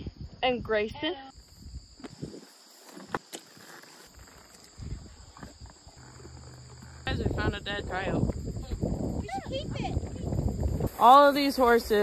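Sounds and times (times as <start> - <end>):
horse tack clicking: 2.9 - 7.1.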